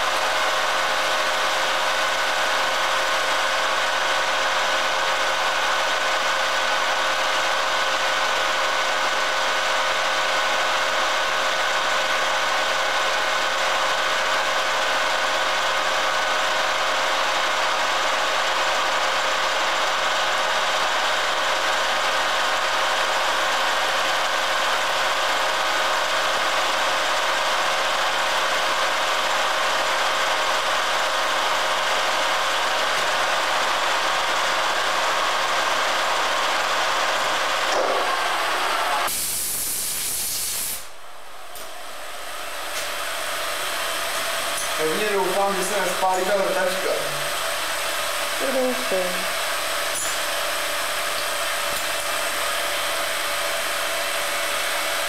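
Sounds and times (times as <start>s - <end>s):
milling machine running with whine: 0.0s - 39.1s, 41.1s - 55.0s.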